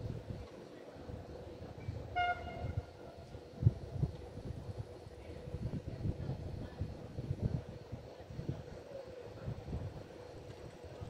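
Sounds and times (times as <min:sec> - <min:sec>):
wind buffeting microphone: 0:00.0 - 0:11.0
distant train horn: 0:02.0 - 0:03.2.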